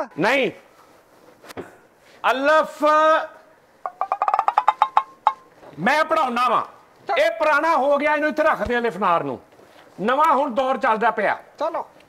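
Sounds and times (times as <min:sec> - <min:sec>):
wood-block-like taps: 0:03.8 - 0:05.5.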